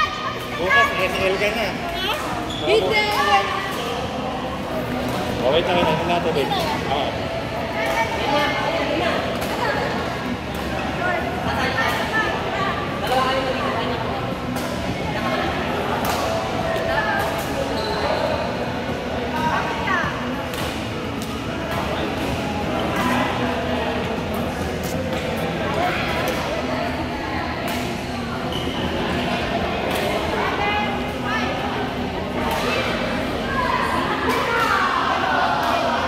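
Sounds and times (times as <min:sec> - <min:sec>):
background chatter of voices: 0:00.0 - 0:36.0.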